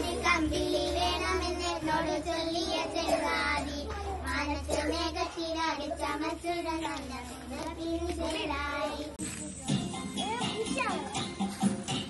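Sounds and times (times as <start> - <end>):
girls singing together: 0.0 - 9.2.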